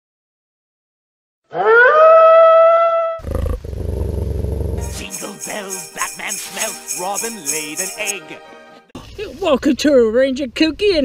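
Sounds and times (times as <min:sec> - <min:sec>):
wolf howling: 0:01.5 - 0:03.2
low rumbling growl: 0:03.2 - 0:04.8.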